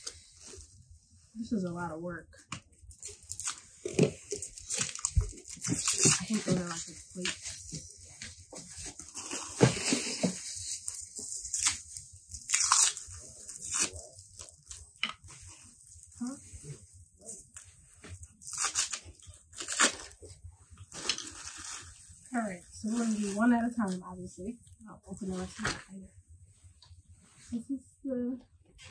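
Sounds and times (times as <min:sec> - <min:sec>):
packaging rustling and crinkling: 0:02.9 - 0:22.1.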